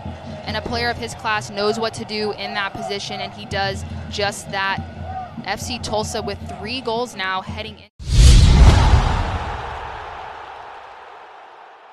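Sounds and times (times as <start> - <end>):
deep boom sound effect: 8.0 - 10.2.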